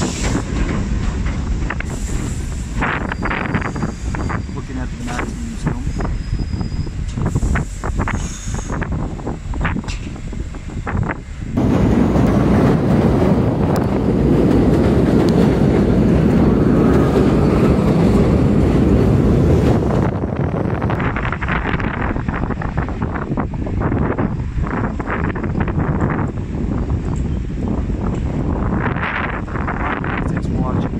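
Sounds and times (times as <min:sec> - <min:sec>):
street noise: 0:00.0 - 0:30.9
train rumbling on elevated tracks: 0:00.0 - 0:30.9
wind on microphone: 0:00.0 - 0:30.9.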